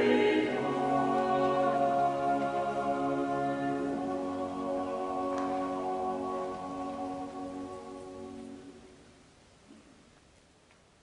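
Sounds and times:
vocal ensemble holding a chord: 0:00.0 - 0:09.0.

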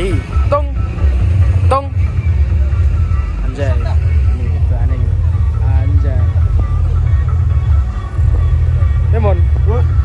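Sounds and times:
faint voices: 0:00.0 - 0:10.0
loud low rumble: 0:00.0 - 0:10.0
music: 0:00.0 - 0:10.0.

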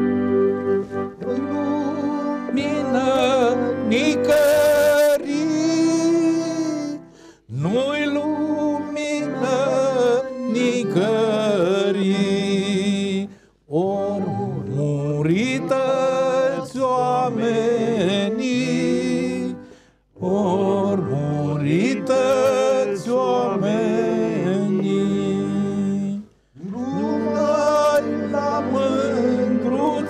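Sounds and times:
accordion playing chords: 0:00.0 - 0:30.0
man singing: 0:01.2 - 0:19.6, 0:20.2 - 0:30.0.

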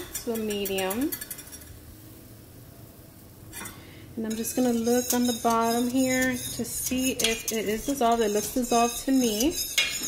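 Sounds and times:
liquid boiling in a pot: 0:00.0 - 0:10.0.

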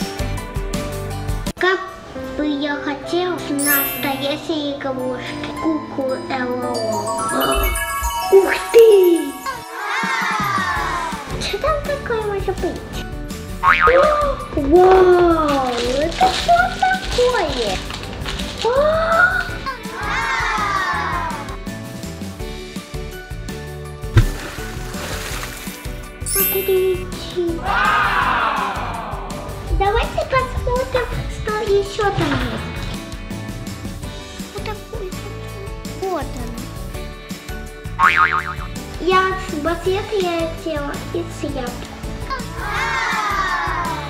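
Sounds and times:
light background music: 0:00.0 - 0:44.0
cartoon boing sound effect: 0:13.6 - 0:14.4, 0:38.0 - 0:38.7.

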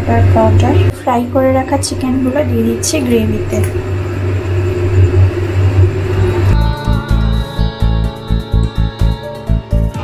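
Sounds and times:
low rumble with hum: 0:00.0 - 0:08.8
music with regular beat: 0:06.6 - 0:10.0.

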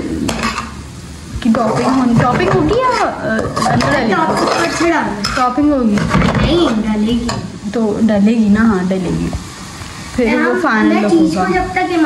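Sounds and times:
light frying sizzle: 0:00.0 - 0:12.0
metal spatula scraping a wok: 0:01.5 - 0:06.2.

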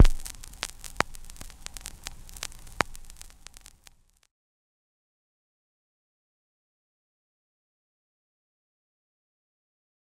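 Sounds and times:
static clicks and pops: 0:00.0 - 0:04.3
static hiss: 0:00.0 - 0:04.3.

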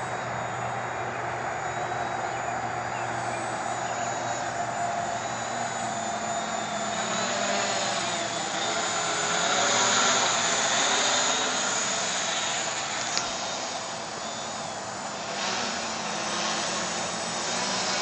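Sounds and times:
quadcopter propellers buzzing: 0:00.0 - 0:18.0.

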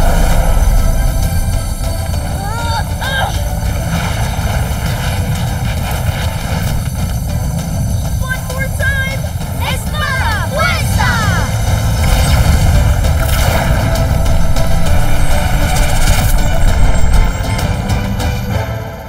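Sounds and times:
loud low rumble: 0:00.0 - 0:19.0
children shouting excitedly: 0:08.2 - 0:11.6.

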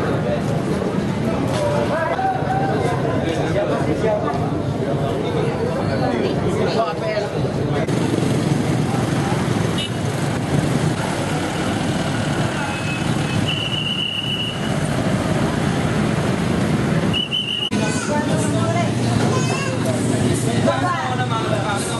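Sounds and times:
motorcycles passing: 0:03.0 - 0:21.9
trucks passing: 0:06.3 - 0:21.9
whistle blast: 0:12.7 - 0:14.7, 0:17.1 - 0:17.8.

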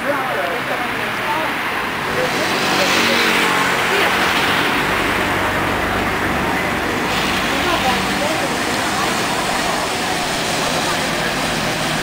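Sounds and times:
vehicle passing close by: 0:00.5 - 0:12.0.

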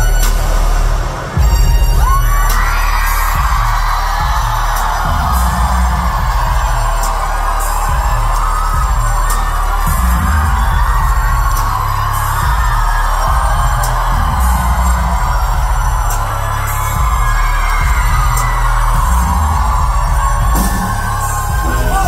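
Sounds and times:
drums: 0:00.0 - 0:22.0.

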